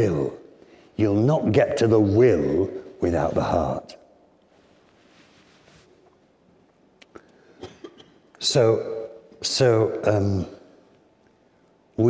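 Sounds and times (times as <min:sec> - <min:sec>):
man coughing quietly: 0:07.6 - 0:08.3.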